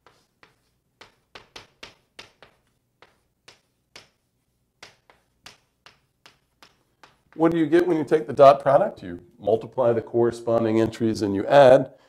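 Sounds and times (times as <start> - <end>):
pen tapping while writing: 0.0 - 7.6.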